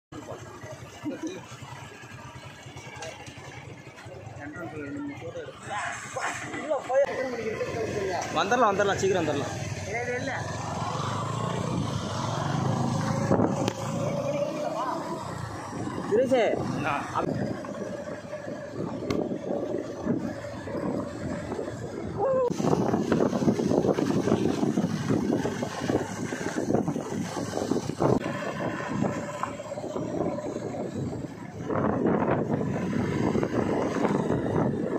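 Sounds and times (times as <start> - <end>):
motorcycle engine running: 0.1 - 34.9
wind noise on microphone: 10.8 - 14.2, 14.8 - 34.9.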